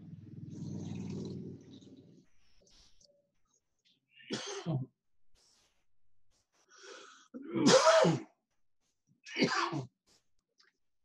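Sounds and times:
person sneezing: 0:07.4 - 0:08.3.

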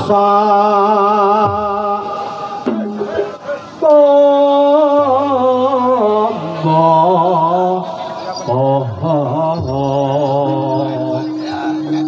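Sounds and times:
man singing melismatic chant: 0:00.0 - 0:12.0.

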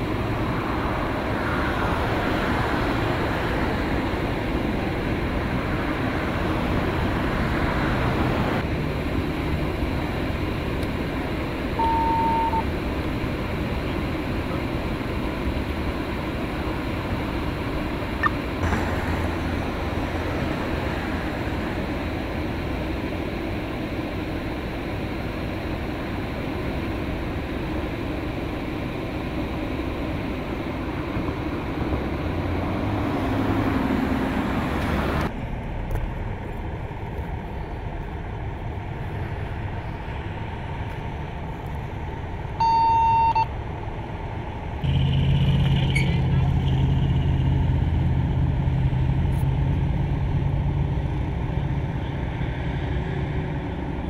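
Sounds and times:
engine idling hum: 0:00.0 - 0:54.0
freeway traffic noise: 0:00.0 - 0:54.0
short high electronic beep: 0:11.8 - 0:12.6, 0:42.6 - 0:43.5.

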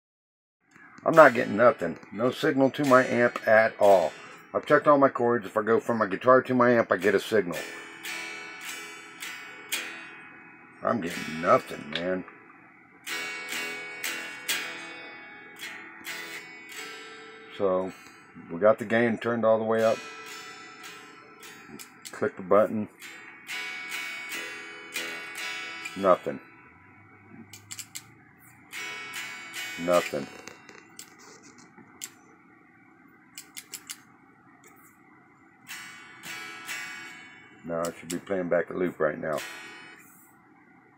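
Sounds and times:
unamplified electric guitar strums: 0:00.7 - 0:32.6, 0:33.2 - 0:40.2.

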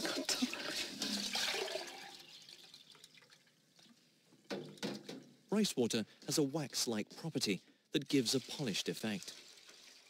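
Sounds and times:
water pouring and splashing: 0:00.0 - 0:05.2, 0:07.2 - 0:10.0.

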